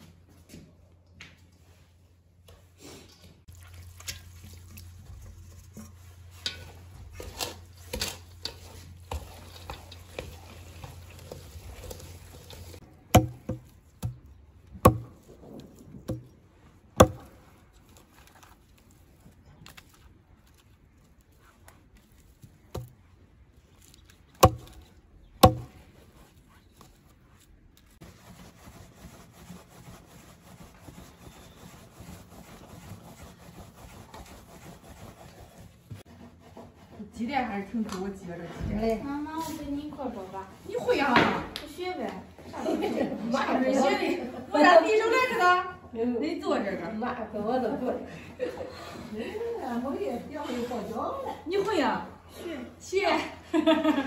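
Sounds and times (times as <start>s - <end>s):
stirring in steel bowl: 3.6s - 16.3s
hatchet chopping branches: 13.1s - 15.2s, 17.0s - 17.4s, 22.7s - 23.0s, 24.3s - 25.8s
rolling pin rubbing on board: 28.0s - 37.1s.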